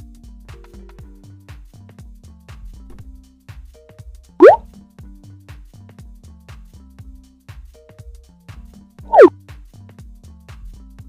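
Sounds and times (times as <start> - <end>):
instrumental music with steady beat: 0.0 - 5.8
rising bloop sound effect: 4.4 - 4.6, 9.1 - 9.3.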